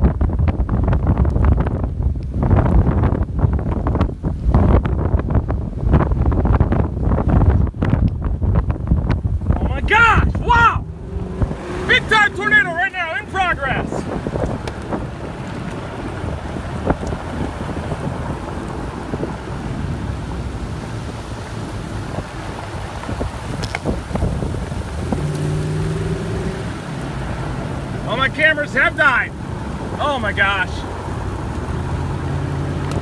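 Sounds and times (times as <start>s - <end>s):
wind buffeting microphone: 0.0s - 33.0s
person shouting high-pitched: 9.6s - 10.9s, 11.8s - 14.0s.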